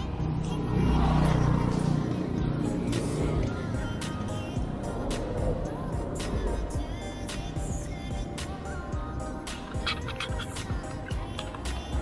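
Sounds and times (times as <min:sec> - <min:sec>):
vehicle passing: 0:00.0 - 0:07.8
background music with steady beat: 0:00.0 - 0:12.0
road and traffic noise: 0:00.0 - 0:12.0.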